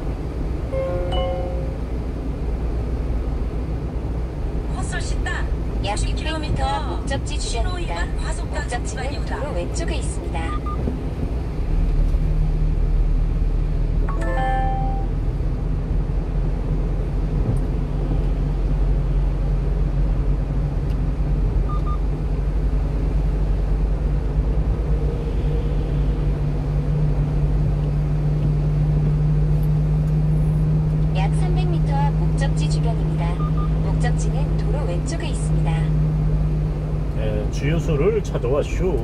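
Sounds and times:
truck engine and road noise: 0.0s - 39.0s.

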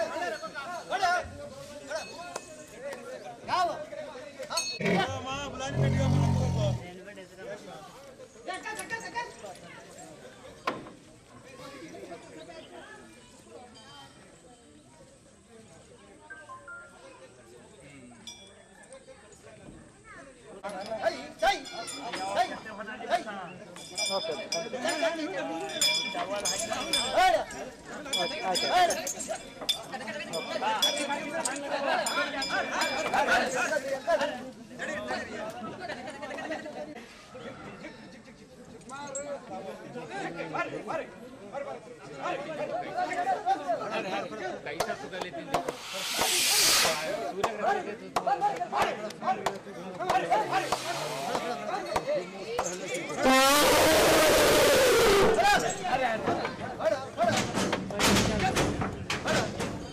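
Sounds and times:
men talking: 0.0s - 10.5s, 20.5s - 59.8s
elephant trumpeting: 4.8s - 6.8s, 53.2s - 55.7s
metal chains clinking: 23.9s - 33.0s.

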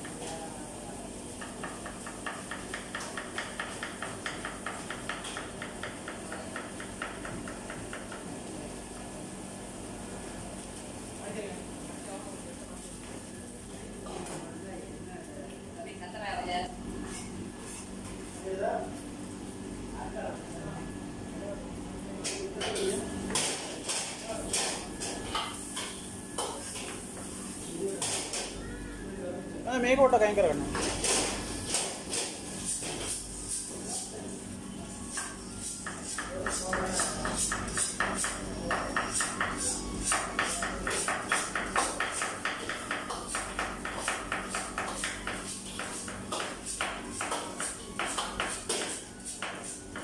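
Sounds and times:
steady background hum: 0.0s - 50.0s.

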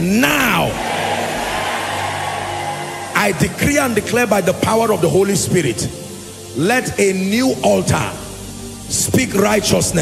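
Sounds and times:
congregation praying aloud: 0.0s - 5.2s.

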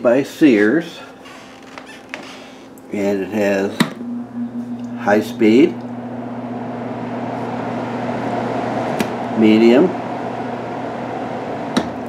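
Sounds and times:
floor fan motor hum: 0.3s - 12.0s.

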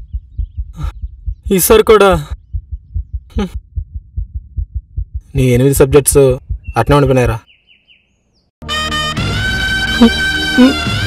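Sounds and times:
rapid bass pulse: 0.0s - 7.2s
person speaking: 3.3s - 3.6s, 5.2s - 7.4s.

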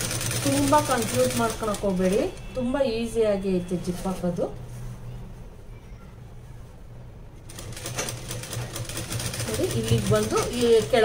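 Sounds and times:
sewing machine stitching: 0.0s - 2.2s, 7.5s - 11.0s
woman speaking: 0.4s - 4.6s, 9.4s - 11.0s.

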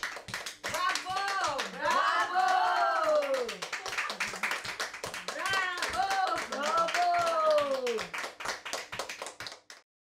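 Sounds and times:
quick hand clapping: 0.0s - 9.8s.

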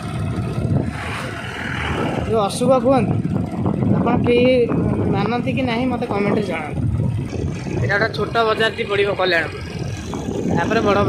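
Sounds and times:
motorcycle running: 0.0s - 11.0s
truck passing: 0.0s - 11.0s
wind rushing over microphone: 0.0s - 11.0s.

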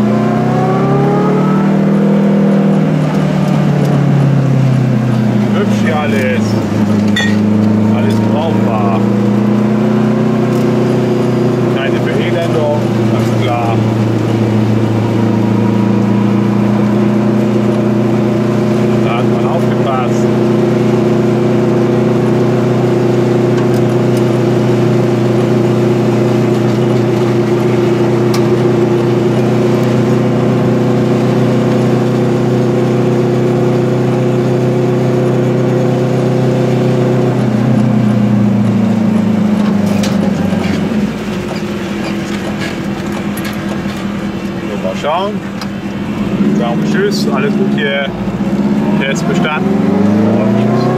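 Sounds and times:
small two-stroke car engine: 0.0s - 50.9s.

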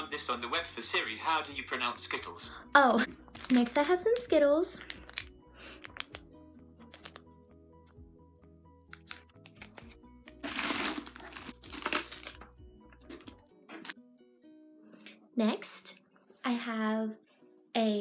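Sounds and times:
soft background music: 0.0s - 18.0s
plastic wrapper crinkling: 3.3s - 4.2s, 4.8s - 6.2s, 8.9s - 12.5s.

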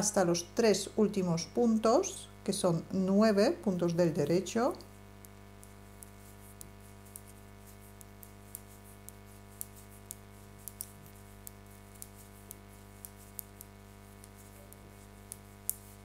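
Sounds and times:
faint steady hum: 0.0s - 16.0s
knitting needles clicking: 5.3s - 16.0s.

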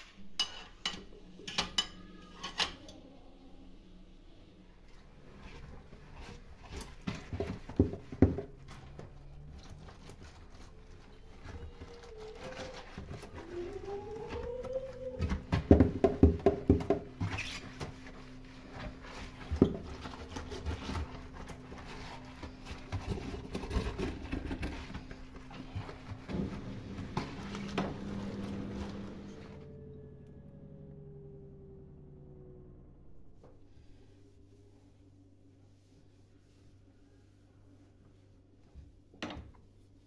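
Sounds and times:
low steady hum: 0.0s - 40.0s
gloved hand scrubbing steel sink: 5.3s - 29.2s.

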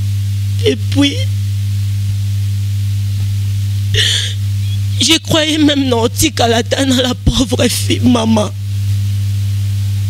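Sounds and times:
low electrical hum: 0.0s - 10.0s
woman sobbing breath: 4.0s - 4.9s.

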